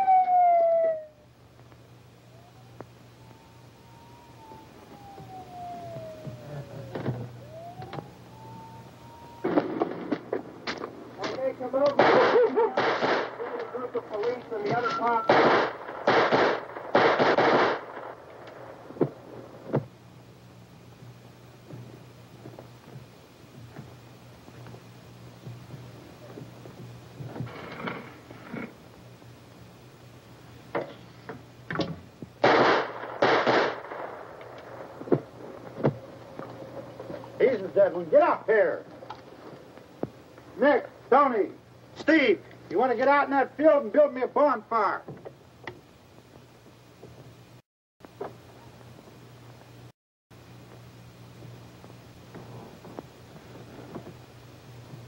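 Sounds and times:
siren wailing: 0:00.0 - 0:01.4, 0:02.2 - 0:10.2, 0:13.4 - 0:15.6, 0:35.3 - 0:39.6
rapid gunshots: 0:12.0 - 0:13.4, 0:15.3 - 0:18.2, 0:32.4 - 0:34.2.

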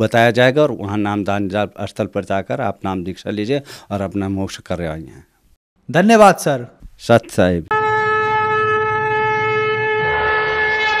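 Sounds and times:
wind instrument holding a note: 0:07.7 - 0:11.0.

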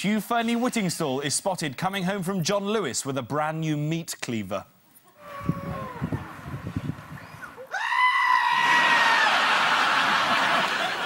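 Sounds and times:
audience laughter: 0:09.2 - 0:11.0.

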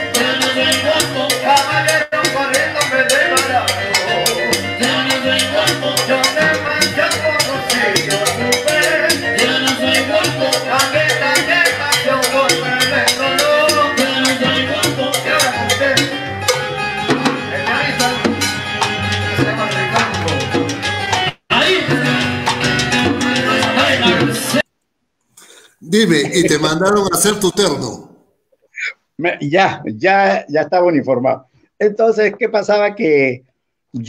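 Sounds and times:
person singing: 0:00.0 - 0:16.2, 0:25.4 - 0:28.1
salsa band playing: 0:00.0 - 0:24.6
congas: 0:00.0 - 0:24.7.

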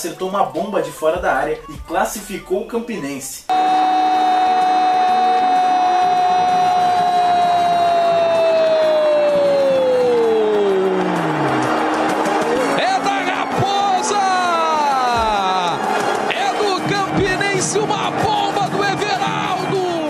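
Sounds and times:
stadium crowd: 0:03.5 - 0:20.0
commentator shouting goal: 0:12.8 - 0:20.0.

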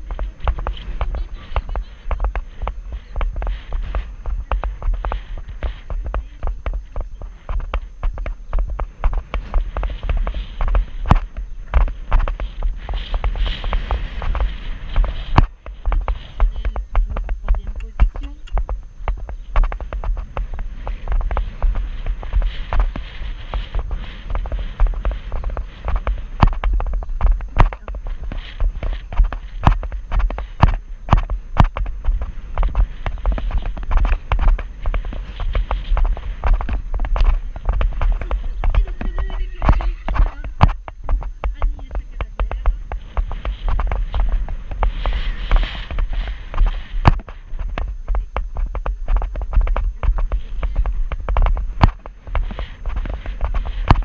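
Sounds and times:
horse hoofbeats on sand: 0:00.0 - 0:54.0
wind rumble on camera: 0:00.0 - 0:54.0.

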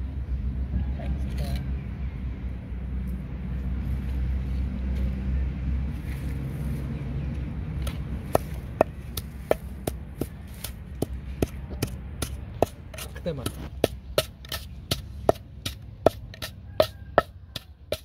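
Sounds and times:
pestle pounding in wooden mortar: 0:08.2 - 0:18.0.

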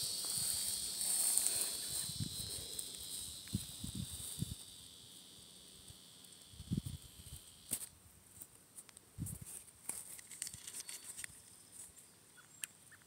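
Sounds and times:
insects chirping: 0:00.0 - 0:08.0, 0:10.1 - 0:13.0.

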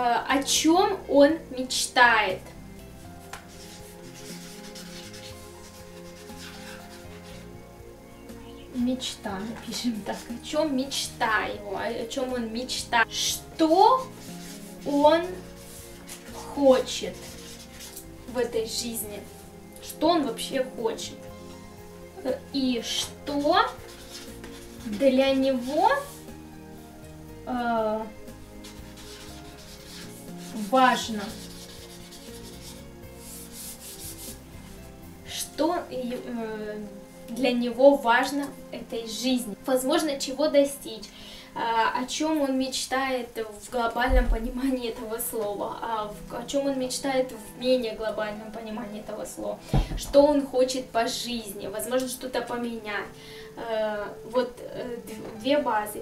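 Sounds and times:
quiet background music: 0:00.0 - 0:56.0
marker rubbing on paper: 0:03.2 - 0:07.5, 0:13.6 - 0:18.0, 0:22.9 - 0:26.2, 0:28.6 - 0:34.8.

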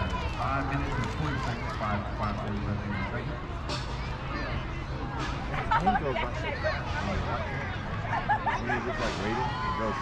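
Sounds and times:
voices talking and calling: 0:00.0 - 0:10.0.

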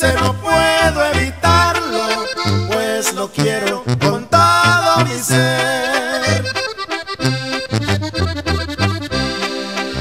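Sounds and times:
accordion melody: 0:00.0 - 0:10.0
bouncing bass line: 0:00.0 - 0:10.0.

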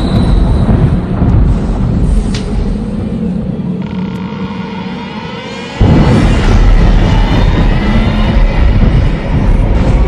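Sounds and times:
heavy low rumble: 0:00.0 - 0:10.0.

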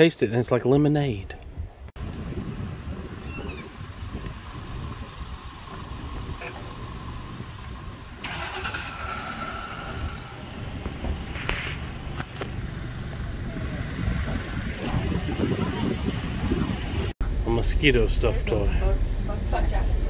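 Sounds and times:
wind rumble on microphone: 0:01.2 - 0:08.2, 0:09.4 - 0:20.0.

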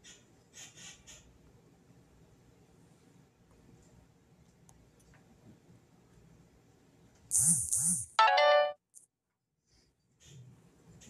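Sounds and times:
electronic phone chime: 0:08.2 - 0:08.8.

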